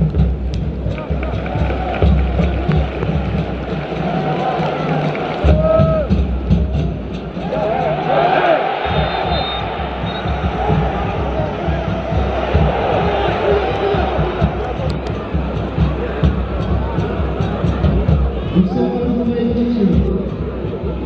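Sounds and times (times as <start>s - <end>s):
crowd voices: 0.0s - 21.0s
stadium music: 0.0s - 21.0s.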